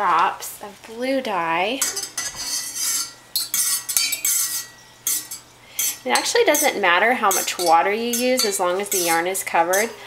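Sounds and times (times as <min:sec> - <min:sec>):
metal spoon stirring in saucepan: 0:01.8 - 0:10.0.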